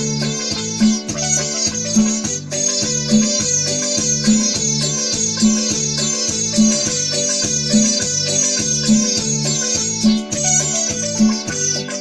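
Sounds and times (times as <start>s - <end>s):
electronic keyboard cumbia music: 0.0s - 12.0s.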